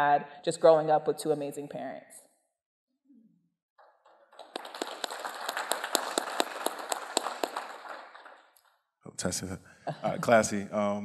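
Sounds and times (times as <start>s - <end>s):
audience applauding: 4.0s - 8.6s.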